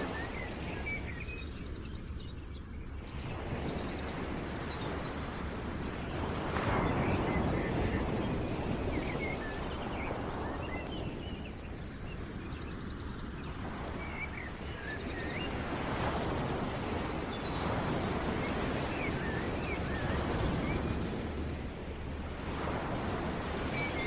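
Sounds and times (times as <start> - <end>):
small birds chirping and trilling: 0.0 - 5.3, 6.2 - 21.8
steady rushing noise: 0.0 - 24.0.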